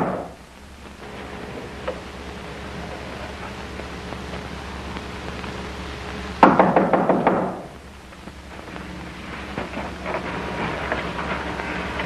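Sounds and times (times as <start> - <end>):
rapid loud knocks: 6.4 - 7.7.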